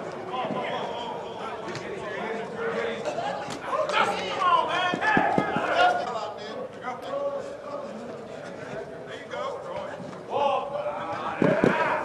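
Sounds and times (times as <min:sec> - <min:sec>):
people talking and calling out: 0:00.0 - 0:12.0.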